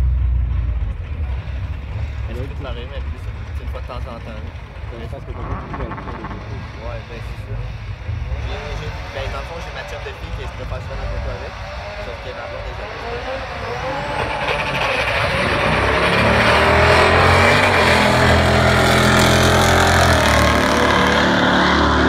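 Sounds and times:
cars accelerating hard: 0:00.8 - 0:22.0.

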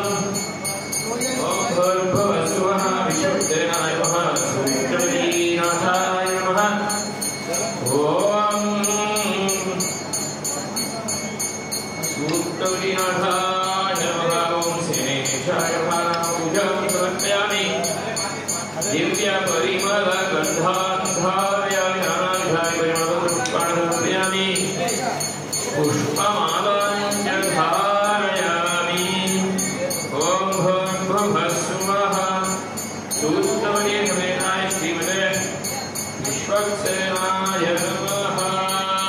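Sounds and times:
men chanting in held tones: 0:00.0 - 0:10.0, 0:12.0 - 0:35.6, 0:36.2 - 0:39.0.

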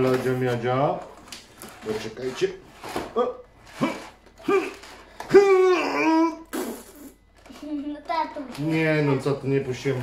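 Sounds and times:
person making vocal sounds: 0:03.8 - 0:07.2.

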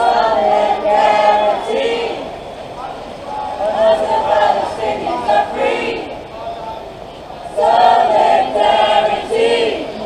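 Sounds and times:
group singing in chorus: 0:00.0 - 0:02.5, 0:03.3 - 0:06.3, 0:07.5 - 0:10.0.

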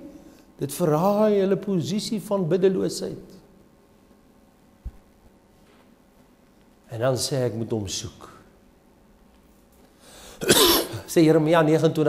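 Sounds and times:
man coughing: 0:10.4 - 0:11.1.

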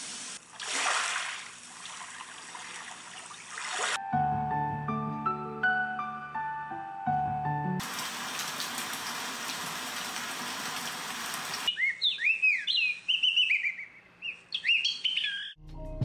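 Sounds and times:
soft music: 0:04.0 - 0:07.8, 0:15.6 - 0:16.0
recorded rain hiss: 0:07.8 - 0:11.7
recorded birdsong chirping: 0:11.7 - 0:15.6.

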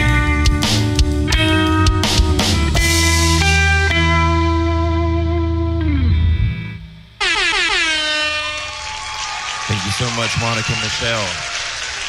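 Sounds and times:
distorted electric guitar chord: 0:00.0 - 0:08.7
horn-like tone sliding down: 0:07.2 - 0:09.2.

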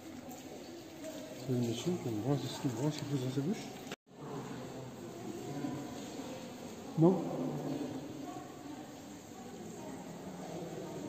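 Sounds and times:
murmur of background voices: 0:00.0 - 0:11.0.

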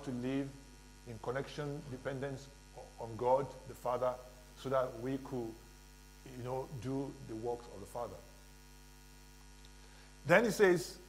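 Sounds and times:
faint electrical mains hum: 0:00.0 - 0:11.0
person speaking: 0:06.2 - 0:08.4, 0:10.2 - 0:11.0.

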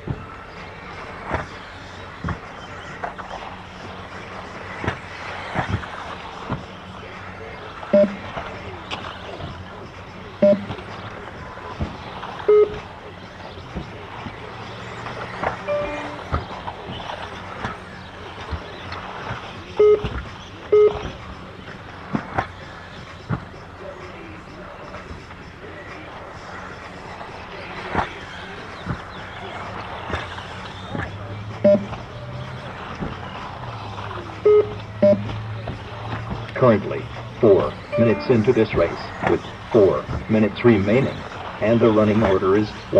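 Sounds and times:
short electronic beeps: 0:07.9 - 0:08.2, 0:10.4 - 0:10.7, 0:12.5 - 0:12.8, 0:15.7 - 0:16.3, 0:19.8 - 0:20.1, 0:20.7 - 0:21.0, 0:31.6 - 0:32.0, 0:34.5 - 0:35.3, 0:37.8 - 0:38.6
rc buggies running on turf: 0:21.2 - 0:42.9.

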